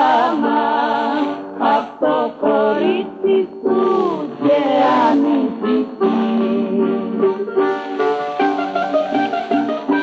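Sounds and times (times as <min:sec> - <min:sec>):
pop song with singing: 0:00.0 - 0:07.3.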